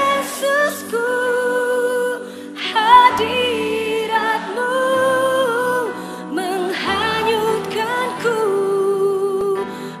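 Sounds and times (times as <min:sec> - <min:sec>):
worship band with singers: 0:00.0 - 0:10.0.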